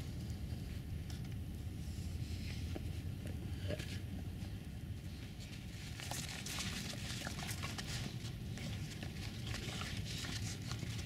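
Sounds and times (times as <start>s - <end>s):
low steady rumble: 0.0s - 11.0s.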